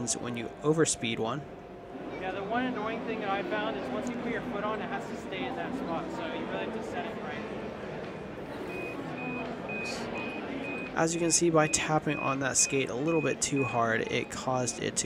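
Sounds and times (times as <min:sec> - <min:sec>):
short high beeps: 0:08.7 - 0:11.0.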